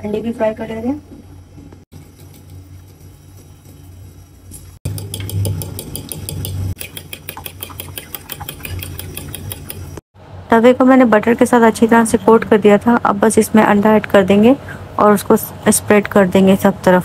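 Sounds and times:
spoon beating eggs in bowl: 0:02.0 - 0:10.0.

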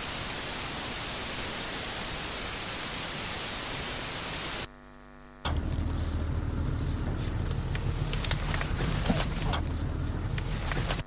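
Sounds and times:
faint hum: 0:00.0 - 0:11.0
steady static hiss: 0:00.0 - 0:11.0.

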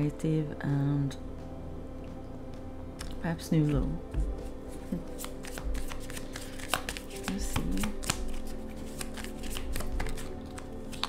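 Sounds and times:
cards being shuffled: 0:04.4 - 0:11.0.

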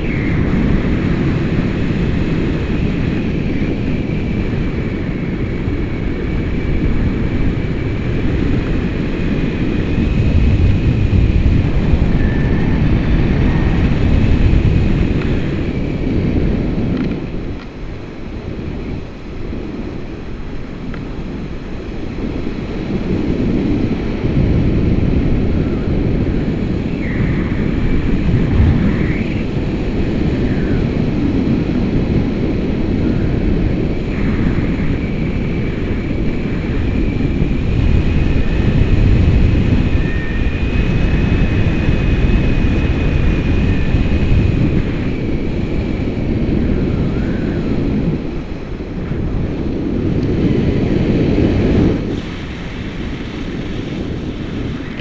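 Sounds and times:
wind buffeting microphone: 0:00.0 - 0:55.0
faint high whistling tone: 0:12.1 - 0:13.8.

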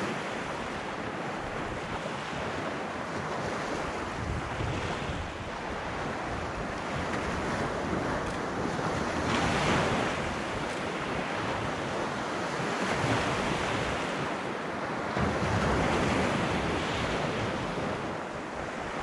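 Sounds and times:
small waves breaking on beach: 0:00.0 - 0:19.0
wind rumbling on microphone: 0:00.0 - 0:19.0.

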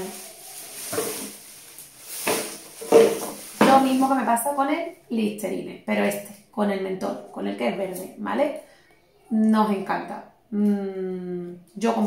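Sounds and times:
plastic bottles being handled: 0:00.0 - 0:04.4.

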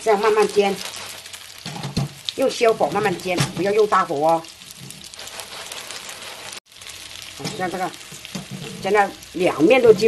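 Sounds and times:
tofu sizzling in oil: 0:00.0 - 0:10.0.

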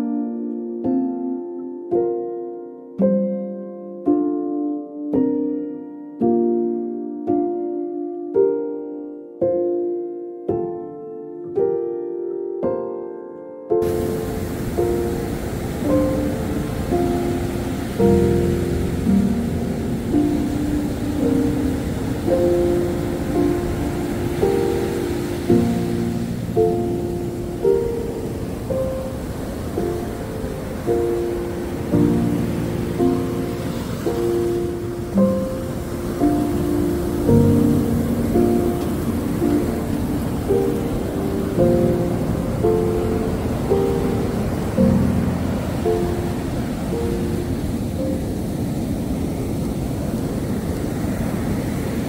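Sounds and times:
slow gentle piano melody: 0:00.0 - 0:52.0
steady wash of noise: 0:13.8 - 0:52.0.

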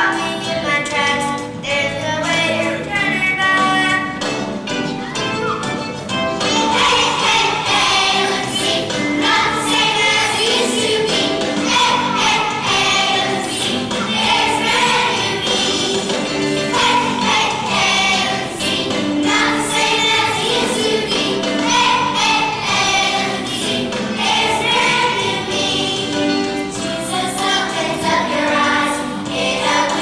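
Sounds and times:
children's choir singing: 0:00.0 - 0:04.3, 0:06.4 - 0:30.0.

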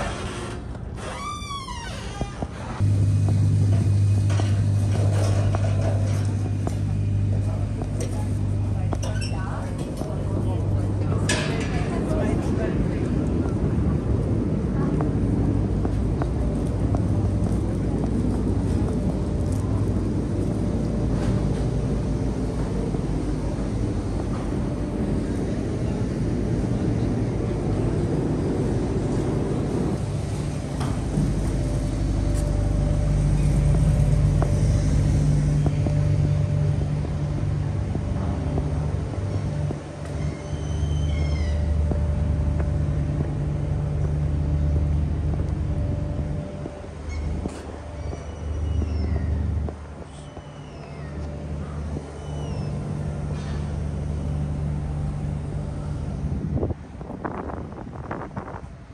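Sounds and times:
low engine rumble: 0:00.0 - 0:58.9.

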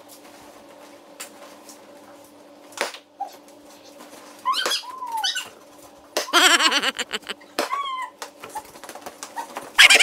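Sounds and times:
person squealing: 0:06.3 - 0:07.4, 0:09.8 - 0:10.0.

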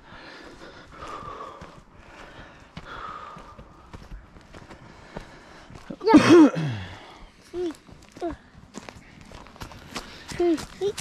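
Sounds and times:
faint breathing: 0:00.0 - 0:06.0, 0:06.6 - 0:11.0
footsteps on dirt and grass: 0:00.0 - 0:11.0.

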